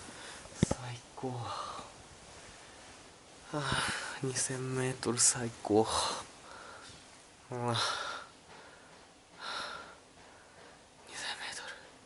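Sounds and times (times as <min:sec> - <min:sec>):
man whispering: 0:00.6 - 0:02.0, 0:03.4 - 0:06.3, 0:07.5 - 0:08.3, 0:11.0 - 0:12.0.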